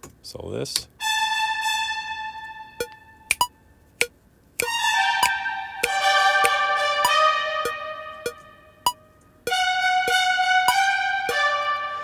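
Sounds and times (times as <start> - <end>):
held brass chord: 1.0 - 3.3, 4.6 - 8.8, 9.5 - 12.0
staccato trumpet notes: 1.0 - 3.5, 4.6 - 12.0.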